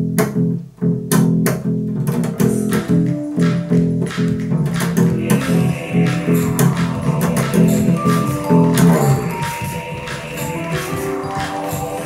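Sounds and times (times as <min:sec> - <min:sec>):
plucked acoustic bass line: 0:00.0 - 0:09.2
sharp percussive hits: 0:02.0 - 0:12.0.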